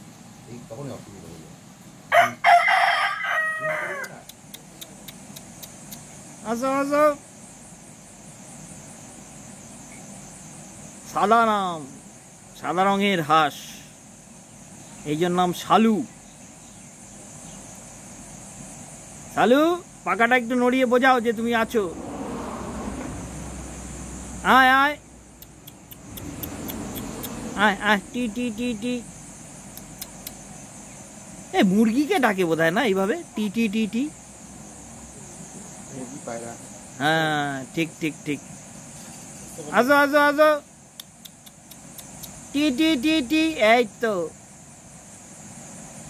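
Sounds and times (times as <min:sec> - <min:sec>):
even hiss: 0:00.0 - 0:46.0
rooster crowing: 0:02.1 - 0:04.3.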